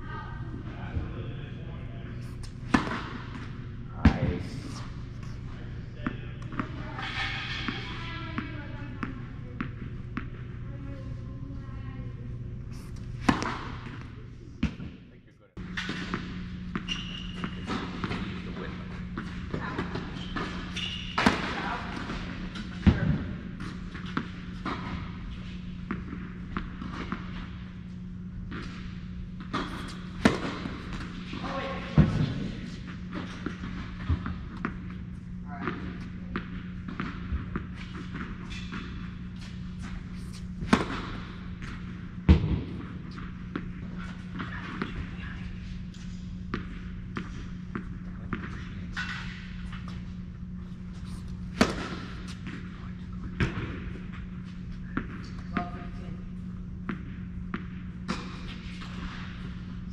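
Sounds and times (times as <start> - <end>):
steady low hum: 0.0 - 59.9
tennis racquet hitting ball: 2.6 - 4.2, 13.2 - 14.0, 19.2 - 24.9, 29.4 - 34.8, 40.6 - 45.0, 51.1 - 54.2
tennis ball bouncing: 2.7 - 4.2, 7.6 - 10.5, 13.1 - 14.9, 29.4 - 32.5, 40.6 - 45.2, 46.5 - 50.0, 51.1 - 59.6.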